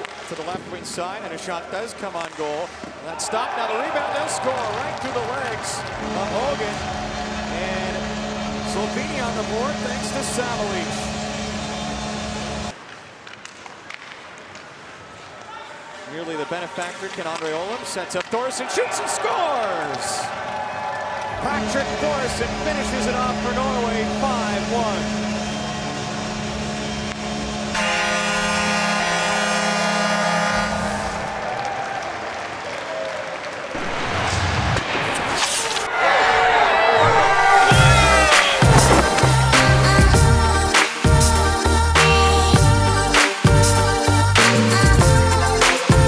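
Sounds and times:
rink and crowd hiss: 0.0 - 20.4, 33.4 - 36.2, 37.3 - 46.0
arena goal horn: 6.0 - 11.3, 21.4 - 31.5
hockey sticks clicking on puck: 12.8 - 15.8, 16.7 - 18.5, 38.4 - 39.9
crowd noise: 35.7 - 40.9.

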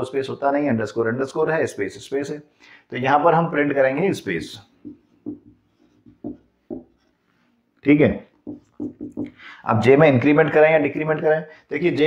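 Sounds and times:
marker writing on whiteboard: 4.7 - 7.5, 8.3 - 9.4.

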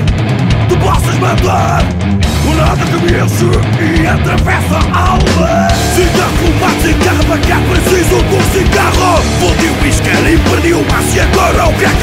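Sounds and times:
punk hardcore band playing: 0.0 - 12.0.

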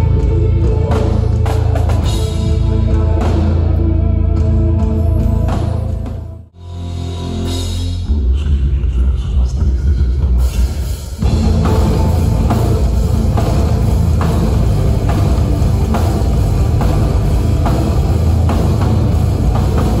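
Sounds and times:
electric guitars: 0.0 - 6.4, 11.2 - 20.0
metal band playing live: 0.0 - 8.1, 10.4 - 20.0
bass guitar: 0.0 - 20.0
drum hits: 11.2 - 20.0.

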